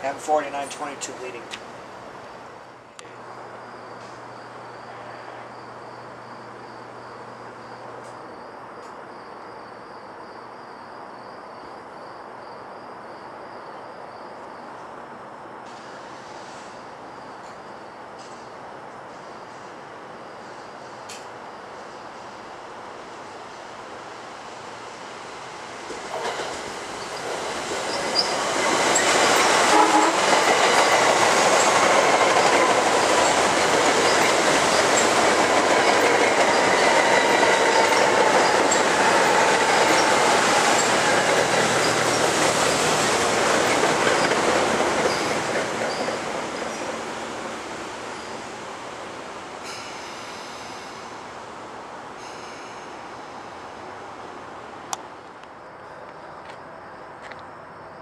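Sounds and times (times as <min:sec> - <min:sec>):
train wheels rushing on rail: 0:15.6 - 0:55.4
train whine falling in pitch: 0:29.0 - 0:31.7.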